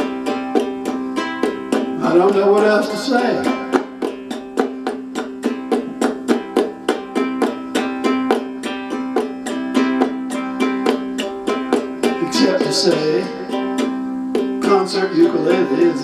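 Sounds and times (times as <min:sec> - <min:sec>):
ukulele strumming: 0:00.0 - 0:16.0.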